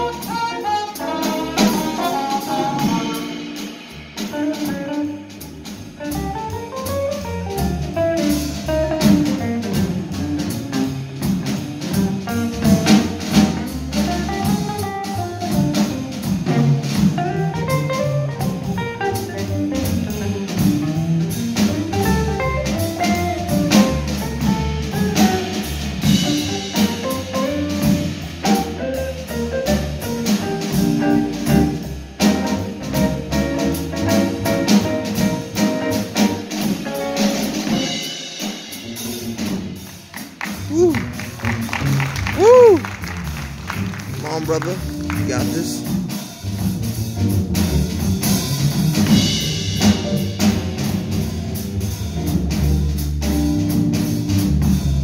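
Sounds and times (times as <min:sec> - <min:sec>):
upright bass: 0:00.0 - 0:37.8, 0:38.8 - 0:55.0
drum kit with cymbals: 0:00.0 - 0:55.0.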